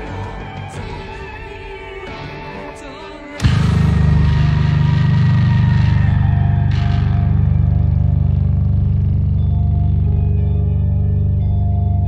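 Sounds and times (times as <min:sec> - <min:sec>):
distorted bass guitar picking: 0:03.4 - 0:12.0.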